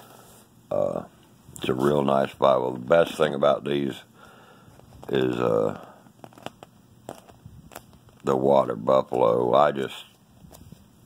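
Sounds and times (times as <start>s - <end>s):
faint crackles of leather cover: 4.8s - 10.9s.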